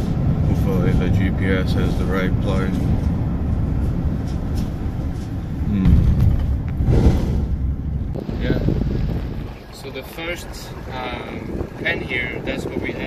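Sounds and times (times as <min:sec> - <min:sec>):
vehicle road and engine rumble: 0:00.0 - 0:13.0.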